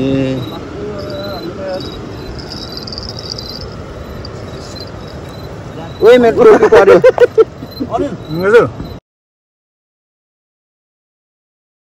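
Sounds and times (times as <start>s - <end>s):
background hiss: 0.0s - 8.9s
crickets chirping: 0.0s - 9.0s.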